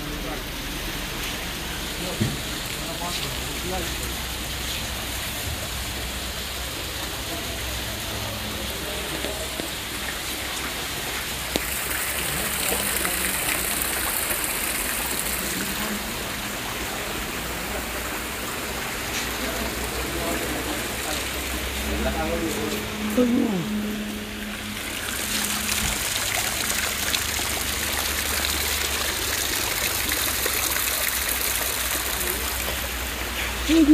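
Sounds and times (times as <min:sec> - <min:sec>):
steady water-like rushing: 0:00.0 - 0:33.9
low hum: 0:21.4 - 0:28.1.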